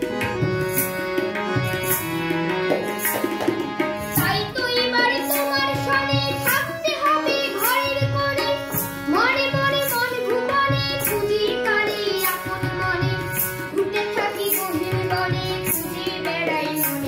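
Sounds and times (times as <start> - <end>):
boy singing devotional song: 0.0 - 17.0
harmonium: 0.0 - 17.0.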